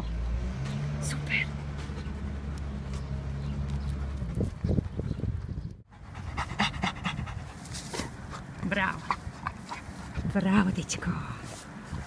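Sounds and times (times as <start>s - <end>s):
dog panting: 5.9s - 10.4s.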